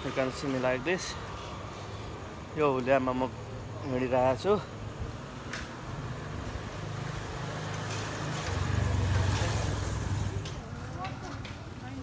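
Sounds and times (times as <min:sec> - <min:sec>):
vehicle engine passing: 0:05.8 - 0:10.8.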